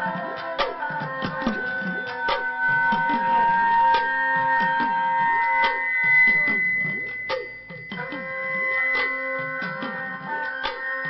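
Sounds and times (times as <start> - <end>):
bowed sarangi: 0.0 - 7.3, 8.0 - 11.0
hourglass drums: 1.3 - 11.0.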